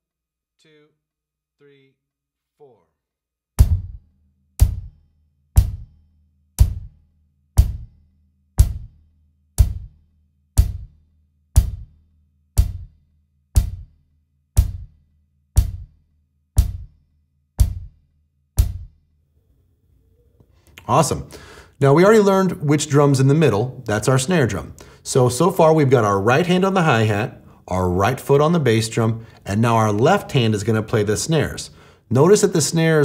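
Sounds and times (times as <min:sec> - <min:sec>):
hi-hat struck with stick: 0:03.6 - 0:04.0, 0:04.6 - 0:05.0, 0:05.6 - 0:06.0, 0:06.6 - 0:07.0, 0:07.6 - 0:08.0, 0:08.6 - 0:09.0, 0:09.6 - 0:10.0, 0:10.6 - 0:11.0, 0:11.6 - 0:12.0, 0:12.6 - 0:13.0, 0:13.6 - 0:14.0, 0:14.6 - 0:15.0, 0:15.6 - 0:16.0, 0:16.6 - 0:17.0, 0:17.6 - 0:18.0, 0:18.6 - 0:19.0
bass drum hits: 0:03.6 - 0:04.9, 0:05.6 - 0:05.9, 0:06.6 - 0:07.0, 0:07.6 - 0:08.0, 0:08.6 - 0:09.0, 0:09.6 - 0:10.0, 0:10.6 - 0:11.0, 0:11.6 - 0:12.0, 0:12.6 - 0:13.0, 0:13.6 - 0:13.9, 0:14.6 - 0:15.0, 0:15.6 - 0:16.0, 0:16.6 - 0:17.0, 0:17.6 - 0:18.0, 0:18.6 - 0:19.0.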